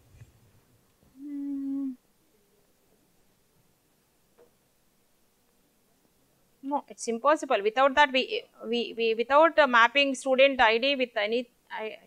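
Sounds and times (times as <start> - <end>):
person humming: 1.1 - 2.0.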